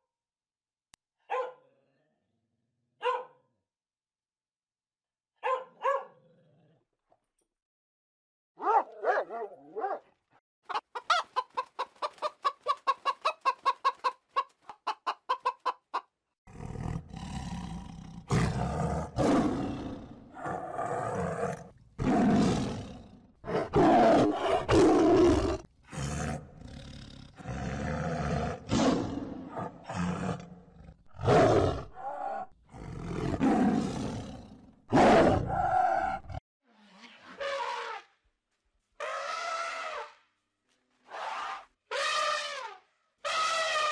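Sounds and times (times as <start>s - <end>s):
dog barking: 1.2s - 1.8s, 3.0s - 3.5s, 5.4s - 6.2s, 8.6s - 10.1s
tiger roaring and growling: 16.5s - 36.4s.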